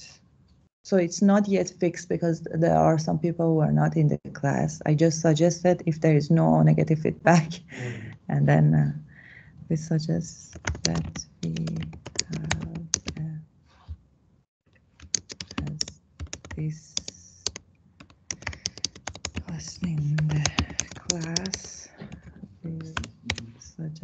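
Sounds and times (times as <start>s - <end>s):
typing on computer keyboard: 10.5s - 13.2s, 15.0s - 23.5s.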